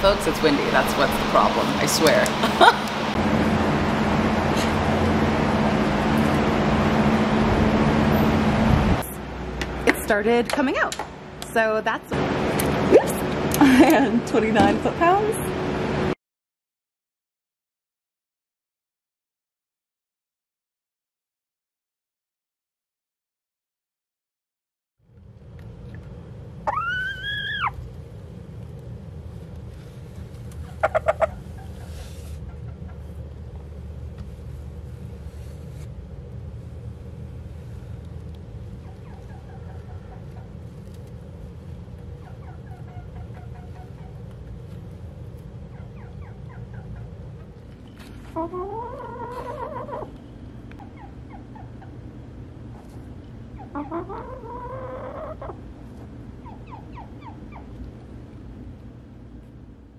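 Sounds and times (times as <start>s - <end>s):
shop fan blowing air: 0.0s - 16.2s, 25.2s - 54.2s
steady low hum: 0.0s - 16.2s, 25.0s - 59.9s
hen calling: 26.6s - 27.8s, 30.7s - 32.2s, 48.2s - 50.1s, 53.5s - 55.6s
hen clucking: 26.7s - 27.8s, 30.5s - 33.2s, 38.8s - 40.6s, 42.1s - 44.3s, 45.6s - 52.0s, 52.8s - 55.6s, 56.4s - 57.8s.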